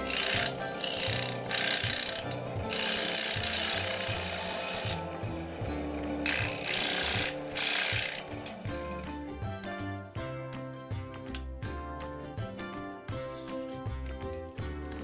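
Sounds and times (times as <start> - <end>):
scroll saw cutting plywood: 0.0 - 9.1
background music with beat: 0.0 - 15.0.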